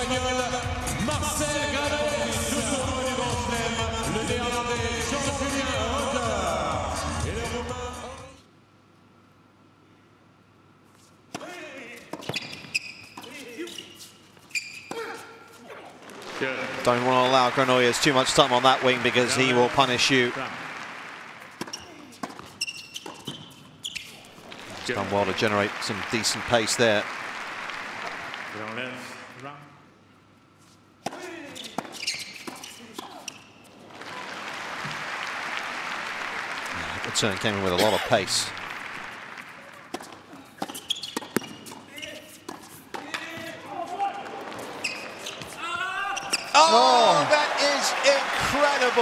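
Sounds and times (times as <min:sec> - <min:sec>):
shoe squeak on hard court: 0:11.4 - 0:15.6, 0:21.6 - 0:24.4, 0:31.1 - 0:33.7, 0:40.0 - 0:43.5, 0:44.5 - 0:46.6
tennis ball bouncing on hard court: 0:21.5 - 0:23.5, 0:39.9 - 0:41.9
racket hitting tennis ball: 0:39.9 - 0:41.8.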